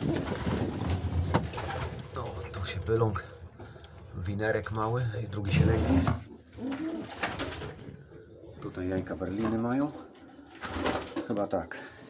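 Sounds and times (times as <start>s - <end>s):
pigeon cooing: 6.4s - 8.6s.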